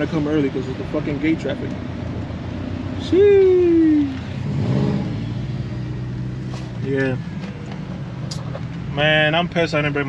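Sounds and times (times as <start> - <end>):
car engine humming low: 0.0 - 10.0
faint road noise: 0.0 - 10.0.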